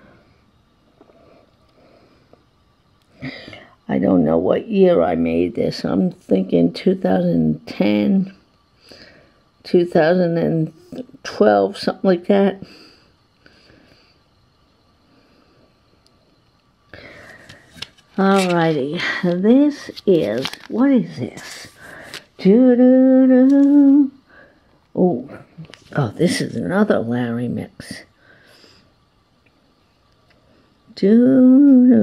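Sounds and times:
handling plastic cd case: 17.3 - 18.8, 19.8 - 20.8.

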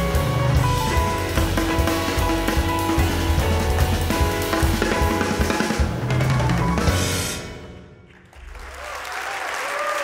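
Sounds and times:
fast piano runs: 0.0 - 7.4
drum kit playing: 0.0 - 8.7
bass: 0.0 - 9.2.

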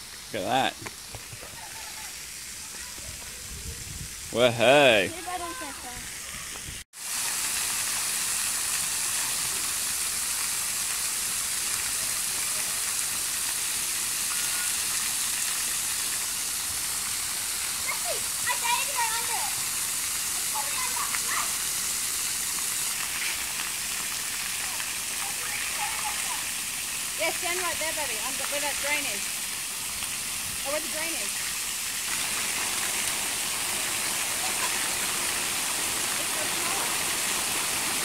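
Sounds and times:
water jets spraying: 0.0 - 38.0
children's voices: 2.6 - 3.7, 5.2 - 6.6, 17.8 - 19.7, 20.3 - 21.7, 24.6 - 26.6, 34.3 - 35.3.

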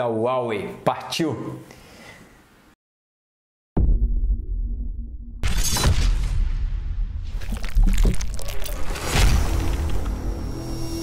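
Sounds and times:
deep low rumbling hit: 3.8 - 8.5
loud bright crash burst: 8.8 - 10.4.

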